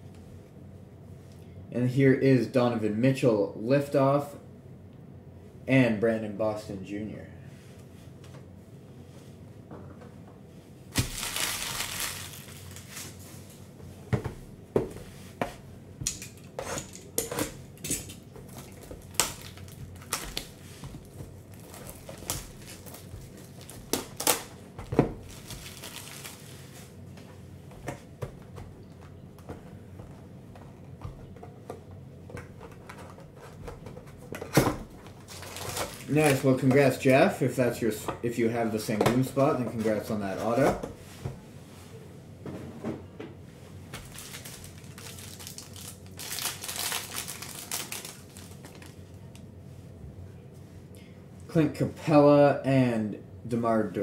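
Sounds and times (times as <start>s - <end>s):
foil wrappers crinkling: 10.9s - 13.2s, 18.0s - 24.6s, 25.2s - 26.9s, 35.0s - 37.0s, 44.0s - 49.1s
shrink wrap tearing and crackling: 10.9s - 13.2s, 17.9s - 24.6s, 25.2s - 26.6s, 35.3s - 36.6s, 44.0s - 49.0s.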